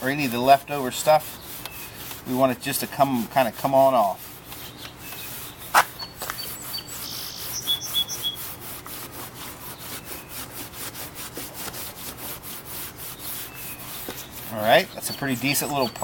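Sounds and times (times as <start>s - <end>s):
steel wool scrubbing metal trim: 0.0s - 16.0s
bird chirping: 4.4s - 8.5s, 9.7s - 10.5s, 13.1s - 16.0s.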